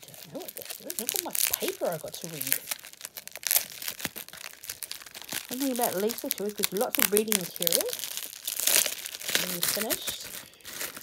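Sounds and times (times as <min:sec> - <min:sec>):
newspaper crinkling: 0:00.0 - 0:11.0.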